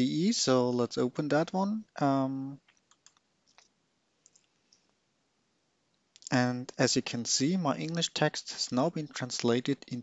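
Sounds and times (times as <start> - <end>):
computer mouse clicks: 2.6 - 4.9.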